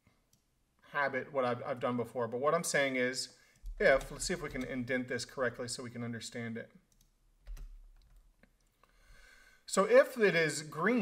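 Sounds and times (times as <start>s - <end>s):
faint keyboard keystrokes: 6.9s - 8.7s.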